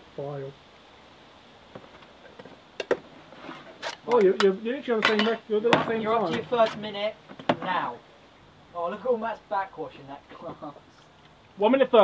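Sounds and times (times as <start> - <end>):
tin cans clinking: 3.9 - 7.7.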